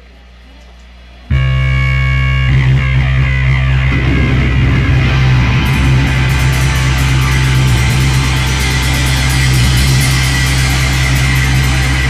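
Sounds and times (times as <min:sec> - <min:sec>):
amplifier hum: 0:01.3 - 0:12.0
distorted electric guitar chord: 0:01.3 - 0:12.0
rock band playing: 0:01.3 - 0:12.0.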